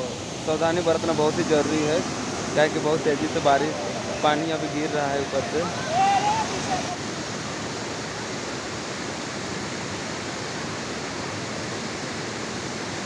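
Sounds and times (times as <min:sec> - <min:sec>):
waterfall rushing over rock: 0:00.0 - 0:13.0.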